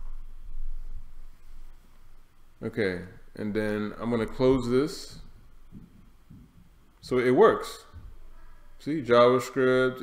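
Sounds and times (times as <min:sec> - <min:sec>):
faint soft thumps: 0:04.3 - 0:06.8.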